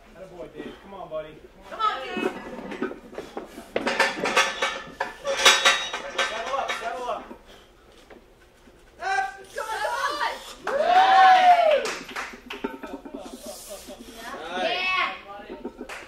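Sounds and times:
people talking: 0:00.2 - 0:02.5, 0:14.1 - 0:16.0
barbell and weight plates clanking: 0:02.0 - 0:07.4, 0:12.0 - 0:13.5.

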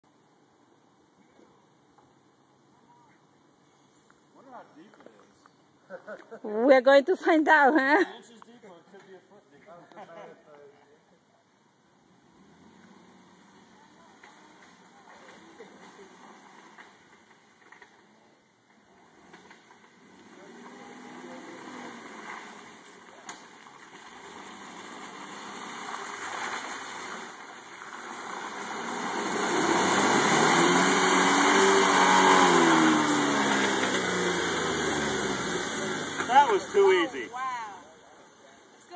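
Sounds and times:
engine running: 0:18.7 - 0:37.6.

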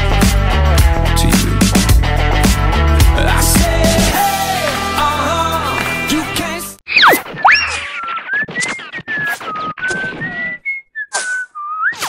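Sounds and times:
whistling wavering tone: 0:06.9 - 0:12.0.

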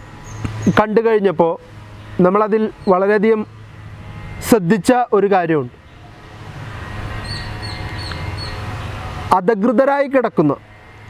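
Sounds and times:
bird chirping: 0:00.0 - 0:01.0, 0:05.8 - 0:09.2.

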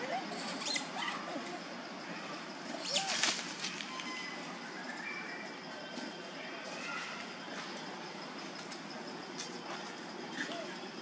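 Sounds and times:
monkeys squeaking: 0:00.0 - 0:01.4
outdoor background noise: 0:00.0 - 0:11.0.

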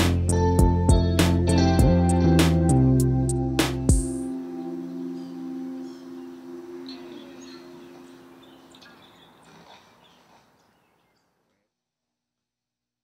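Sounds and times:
band chord ringing out: 0:00.0 - 0:08.8
faint bird chirps: 0:04.6 - 0:11.4.

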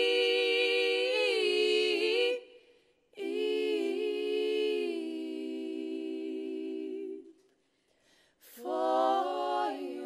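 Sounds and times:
women singing a cappella: 0:00.0 - 0:10.0.

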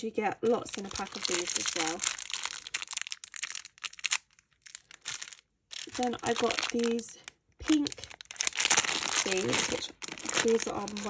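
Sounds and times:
plastic packets crinkling: 0:00.4 - 0:11.0.

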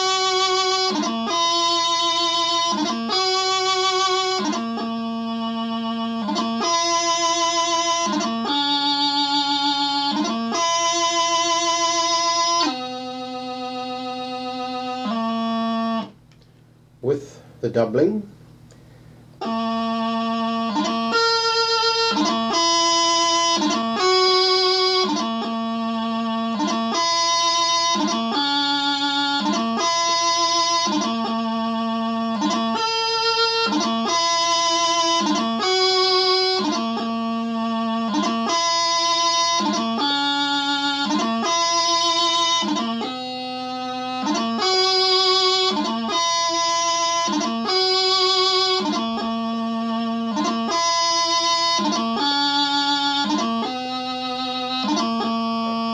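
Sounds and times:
practice chanter melody: 0:00.0 - 0:16.2, 0:17.0 - 0:55.9.

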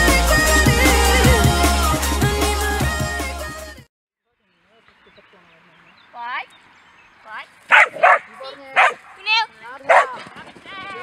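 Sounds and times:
dog barking: 0:07.7 - 0:10.2.

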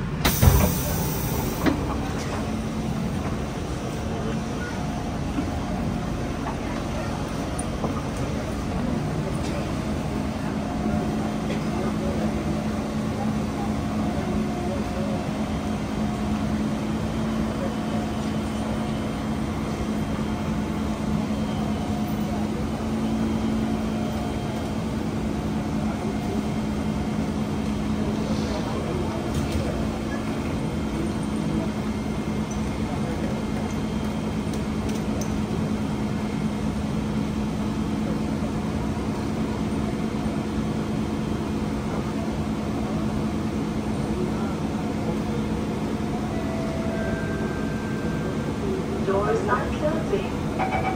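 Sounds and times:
train humming at platform: 0:00.0 - 0:50.9
faint voices: 0:41.6 - 0:50.9.

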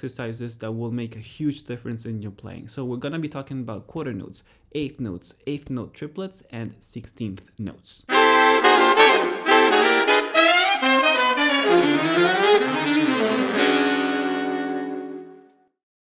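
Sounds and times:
saxophone melody: 0:08.1 - 0:15.6.

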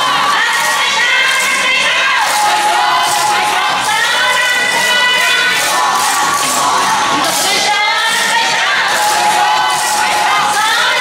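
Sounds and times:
dance music: 0:00.0 - 0:11.0
dancers shouting calls together: 0:00.0 - 0:11.0.

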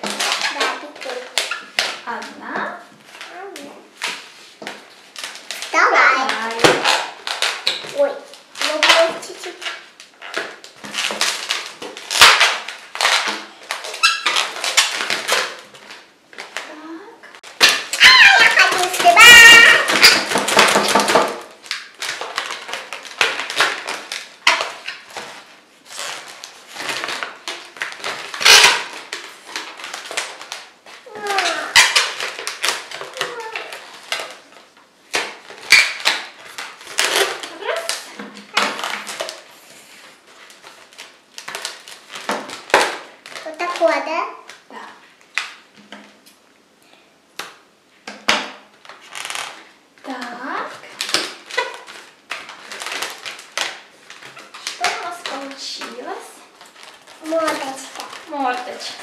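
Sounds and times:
balloon rubber squeaking: 0:08.7 - 0:15.6, 0:17.6 - 0:21.3, 0:28.3 - 0:29.0, 0:31.1 - 0:32.5, 0:49.1 - 0:49.6
loud wavering balloon squeal: 0:14.0 - 0:14.4, 0:17.9 - 0:20.2.

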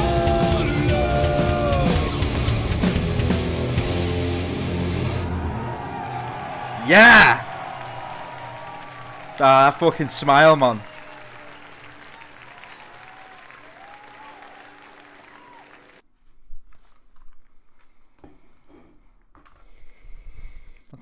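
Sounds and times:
crowd applauding and cheering: 0:03.7 - 0:16.0
whoops from crowd: 0:05.0 - 0:16.0.

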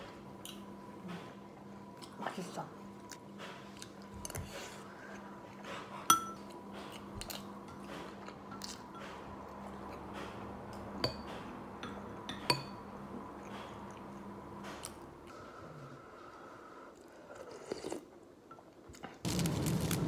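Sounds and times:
soft eating sounds: 0:00.0 - 0:19.4
faint steady hum: 0:00.0 - 0:20.0
metal spoon clinking on ceramic bowl: 0:06.1 - 0:06.4, 0:11.0 - 0:12.8.

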